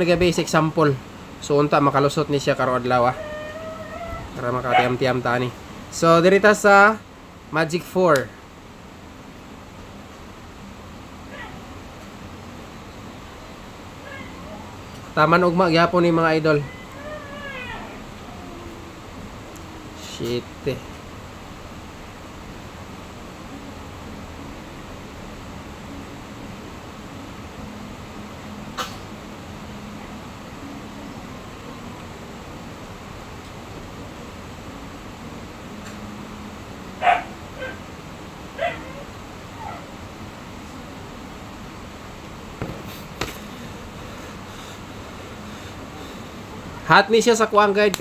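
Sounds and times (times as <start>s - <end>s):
fainter lower animal call: 3.0s - 5.0s, 14.0s - 14.8s, 16.6s - 19.0s
high-pitched animal call: 3.1s - 5.0s, 16.6s - 18.8s
dog barking: 4.7s - 5.0s, 37.0s - 37.8s, 38.6s - 39.9s.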